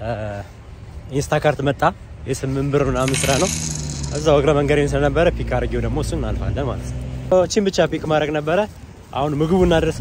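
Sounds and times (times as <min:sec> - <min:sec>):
man talking: 0:00.0 - 0:10.0
coin-like jingle: 0:02.9 - 0:04.6.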